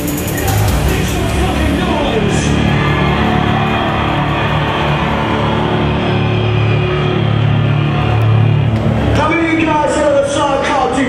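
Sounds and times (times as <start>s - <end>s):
metal band playing live: 0.0s - 7.1s.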